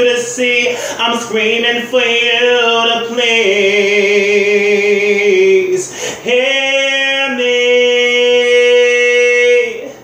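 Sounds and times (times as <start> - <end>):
man singing a cappella: 0.0 - 10.0.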